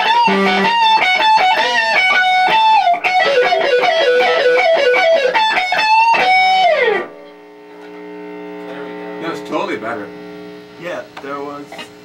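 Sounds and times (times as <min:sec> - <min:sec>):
guitar amplifier humming: 0:00.0 - 0:12.0.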